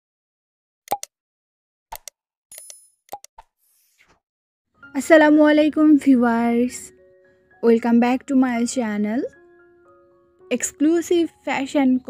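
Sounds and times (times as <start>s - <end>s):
mouse-click pops: 0.9s - 1.1s.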